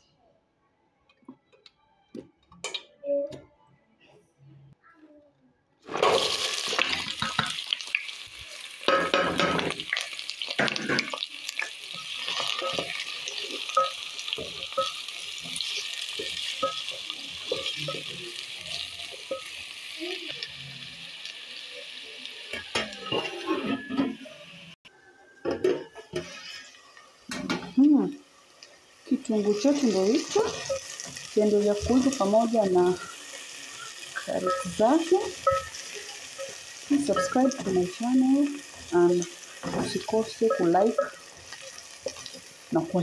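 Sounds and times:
vegetables sizzling in hot oil: 5.9 - 24.8, 26.0 - 43.0.

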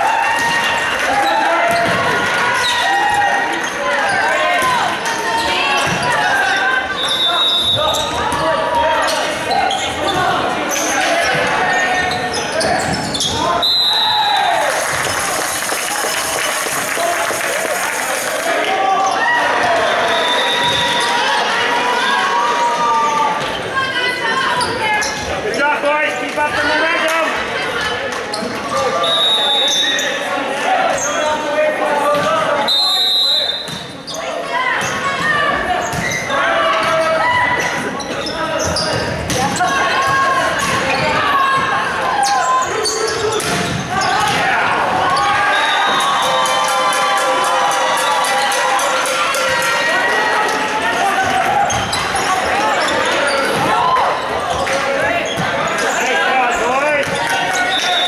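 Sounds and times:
voices calling and shouting: 0.0 - 14.7.

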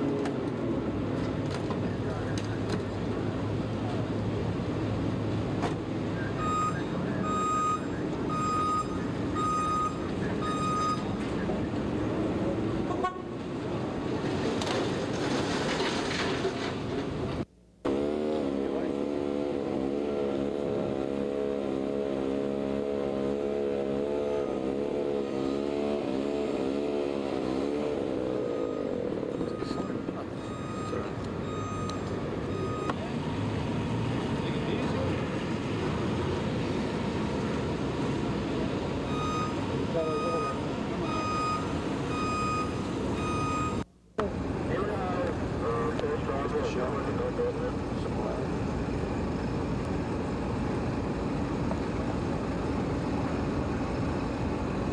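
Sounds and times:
street noise: 0.0 - 54.9
reversing beeper: 6.2 - 11.2, 28.4 - 33.5, 39.0 - 43.8.

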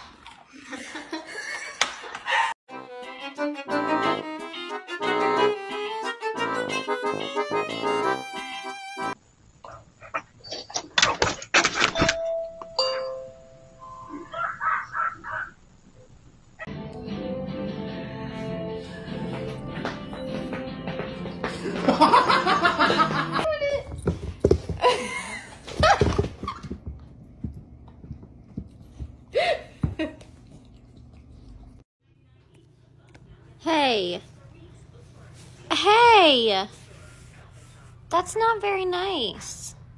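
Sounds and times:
two-tone doorbell chime: 12.2 - 14.2
dog paws thumping on wooden floor: 23.7 - 25.0, 25.7 - 30.1.

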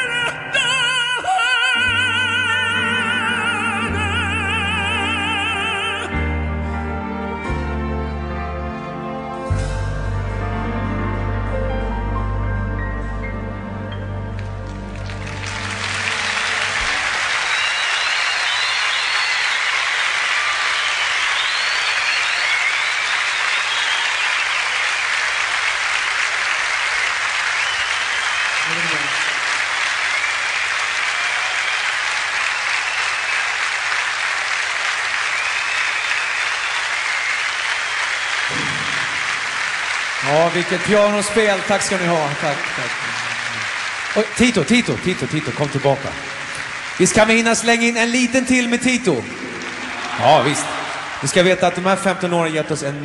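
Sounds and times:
audience applauding: 14.3 - 53.0.

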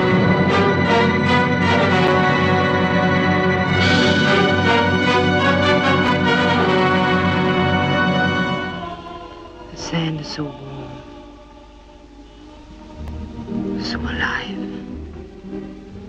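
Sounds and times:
orchestral film music: 0.0 - 16.0.

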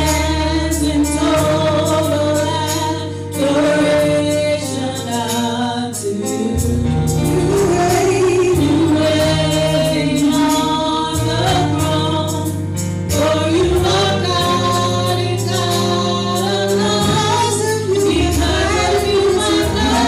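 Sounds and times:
group singing gospel: 0.0 - 20.0
accompaniment holding low notes: 6.5 - 20.0.

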